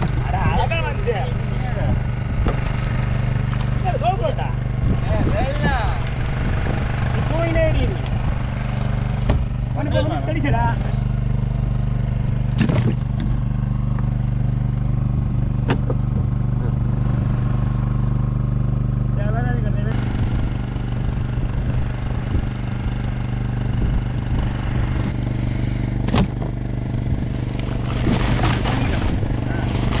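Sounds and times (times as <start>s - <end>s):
voices calling out: 0.0s - 11.2s
boat engine humming: 0.0s - 30.0s
sharp knocks: 26.0s - 26.6s.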